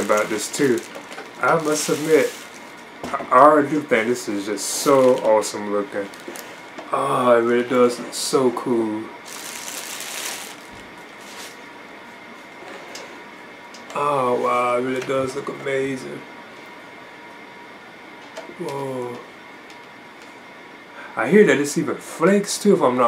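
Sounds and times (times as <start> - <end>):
plastic bag crinkling: 0.0 - 2.9, 4.6 - 6.7, 9.2 - 11.6
faint steady hum: 0.0 - 23.0.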